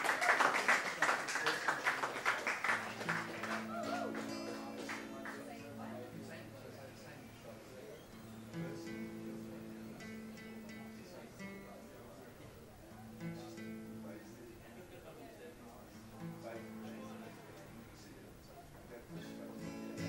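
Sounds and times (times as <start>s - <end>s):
acoustic guitar strumming: 2.8s - 6.7s, 8.1s - 12.2s, 13.0s - 14.4s, 16.0s - 17.3s, 19.0s - 20.0s.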